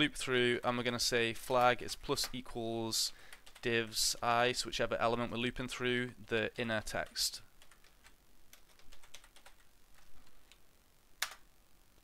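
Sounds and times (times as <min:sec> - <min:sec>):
typing on a computer keyboard: 0:03.3 - 0:03.8, 0:07.0 - 0:09.7.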